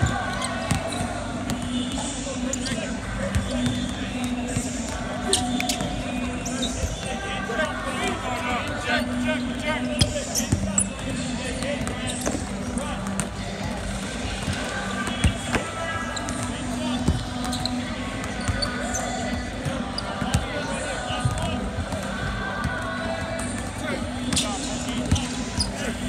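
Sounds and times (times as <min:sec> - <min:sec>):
voices: 0:00.0 - 0:26.0.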